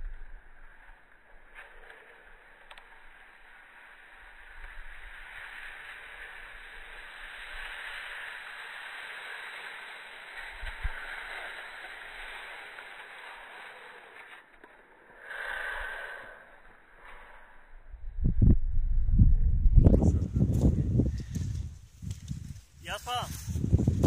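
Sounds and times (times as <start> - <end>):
skis scraping over snow: 0.1 - 15.2, 20.4 - 24.0.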